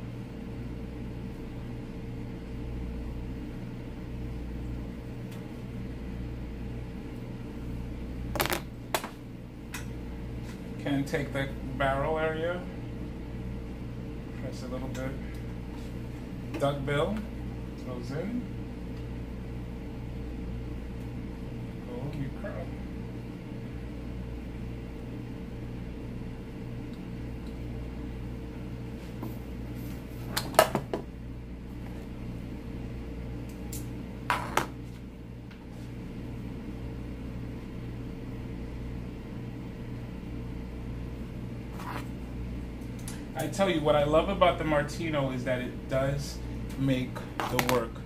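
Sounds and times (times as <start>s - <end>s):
steady electrical hum: 0.0s - 48.0s.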